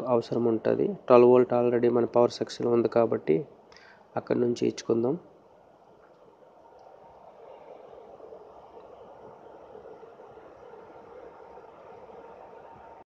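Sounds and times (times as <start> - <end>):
cooling fan whirring: 0.0 - 13.0.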